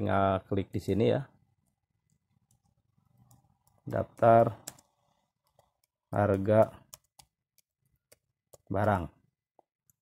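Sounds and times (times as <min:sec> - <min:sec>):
computer mouse clicks: 0:01.6 - 0:10.0.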